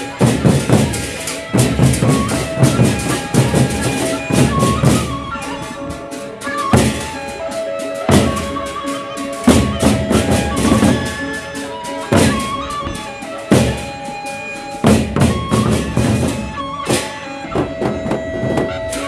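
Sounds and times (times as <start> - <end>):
barrel drums beaten: 0.1 - 6.0, 12.1 - 14.2, 14.8 - 19.0.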